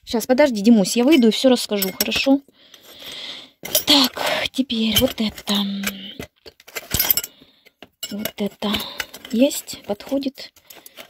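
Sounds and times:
metal hardware clinking in a wooden box: 0:00.9 - 0:02.4, 0:03.6 - 0:04.2, 0:04.8 - 0:11.0.

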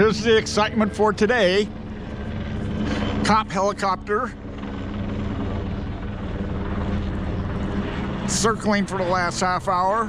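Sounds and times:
helicopter rotor drone: 0:00.0 - 0:10.0.

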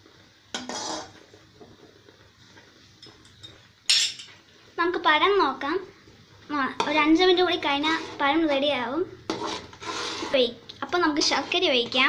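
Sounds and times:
metal ladle clanking on pan: 0:00.5 - 0:01.1.

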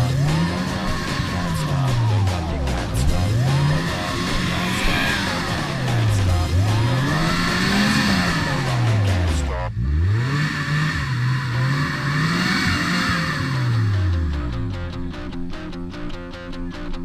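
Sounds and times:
off-road vehicle engine revving: 0:00.0 - 0:16.2.

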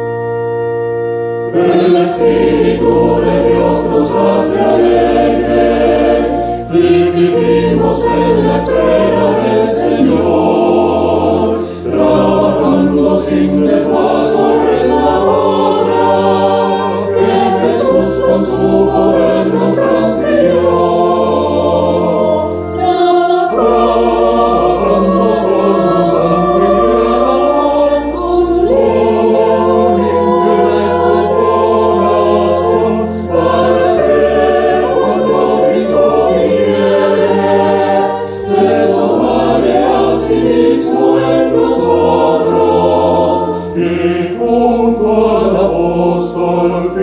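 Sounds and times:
choir singing a hymn: 0:00.0 - 0:47.0
keyboard bass notes: 0:00.0 - 0:47.0.

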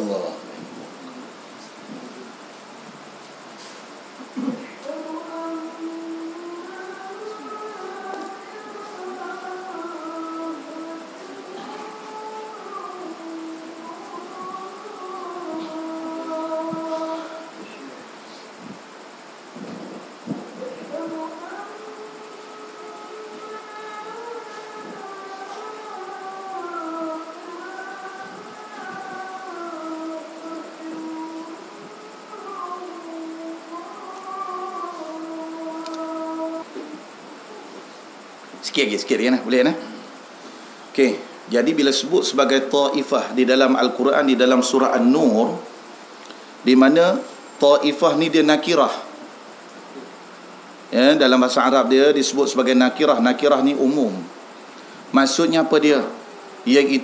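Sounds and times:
man singing call to prayer: 0:00.0 - 0:01.4, 0:04.3 - 0:18.6, 0:20.1 - 0:37.8, 0:38.5 - 0:40.1, 0:40.9 - 0:45.9, 0:46.6 - 0:49.4, 0:50.9 - 0:54.4, 0:55.0 - 0:57.0.

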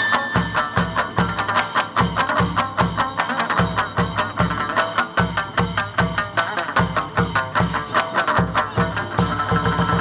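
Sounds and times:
steady drum beat: 0:00.0 - 0:10.0.

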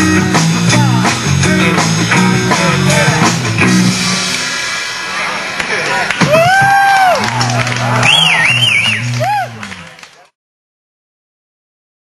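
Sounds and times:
rock band final chord: 0:00.0 - 0:05.2.

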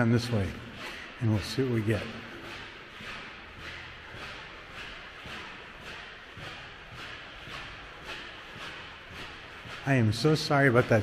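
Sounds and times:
footsteps on stone floor: 0:00.0 - 0:11.0
shoes squeaking: 0:00.0 - 0:11.0.

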